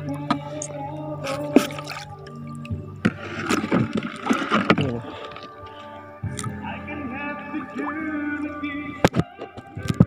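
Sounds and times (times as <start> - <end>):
background music with steady tones: 0.0 - 10.0
sea water splashing and sloshing: 1.2 - 6.1.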